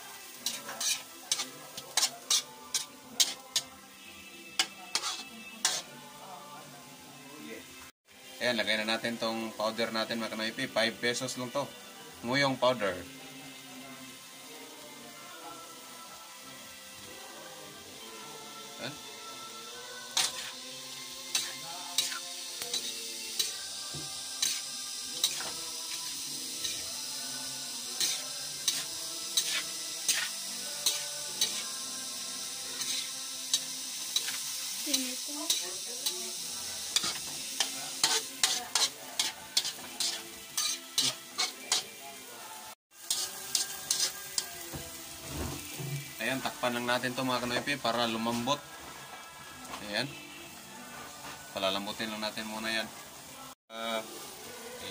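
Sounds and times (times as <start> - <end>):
vegetables sizzling in a wok: 0.0 - 54.9.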